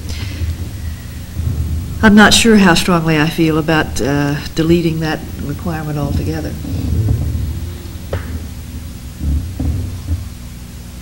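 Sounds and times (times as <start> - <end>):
faint hiss: 0.0 - 11.0
low steady rumble: 0.0 - 11.0.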